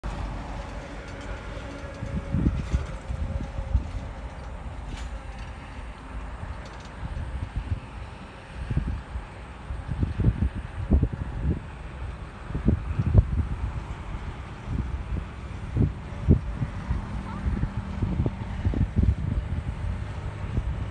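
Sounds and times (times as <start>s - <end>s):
wind buffeting microphone: 0.0s - 20.9s.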